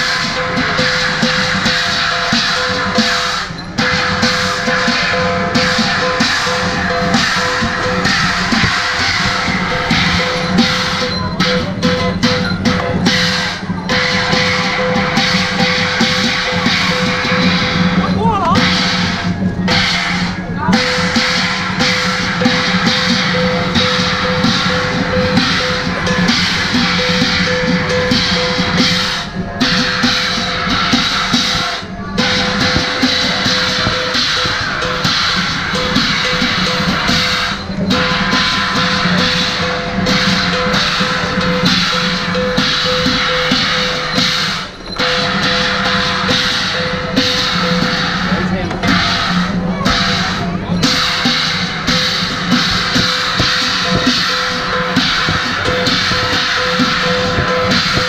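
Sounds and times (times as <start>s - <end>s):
crashing cymbals: 0.0s - 58.0s
drum beating: 0.0s - 58.0s
percussion band playing: 0.0s - 58.0s
steady ringing tone: 0.0s - 58.0s.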